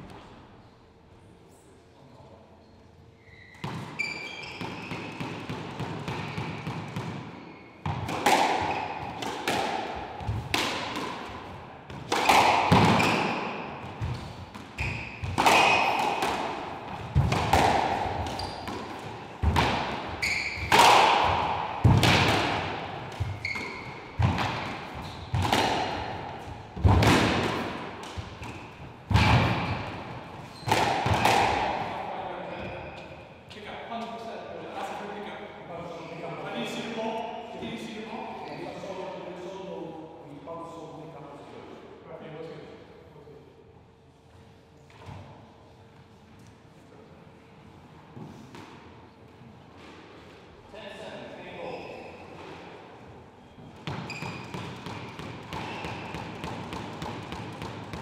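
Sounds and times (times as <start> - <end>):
squash ball hits echoing: 3.6 - 33.2, 53.8 - 58.0.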